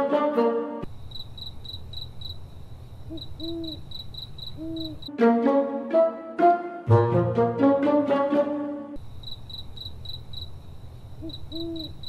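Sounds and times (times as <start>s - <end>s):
plucked-string comedy music: 0.0s - 0.9s, 5.1s - 9.0s
crickets chirping: 0.8s - 5.2s, 9.0s - 12.0s
owl-like hoot: 3.1s - 3.8s, 4.6s - 5.0s, 11.2s - 12.0s.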